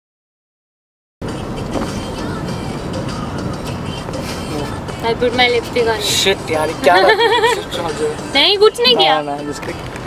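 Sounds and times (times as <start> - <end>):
car cabin road rumble: 1.2 - 10.0.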